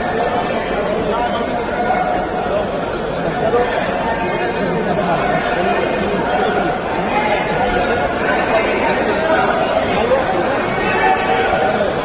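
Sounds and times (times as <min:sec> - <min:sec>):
men's voices babbling: 0:00.0 - 0:12.0.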